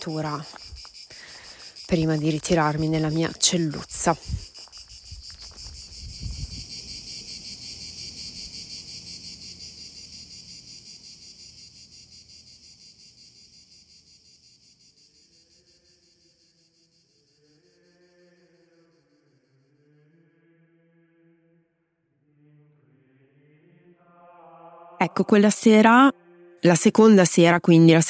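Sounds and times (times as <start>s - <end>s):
crickets chirping: 0.0s - 19.8s
faint chanting: 15.2s - 26.7s.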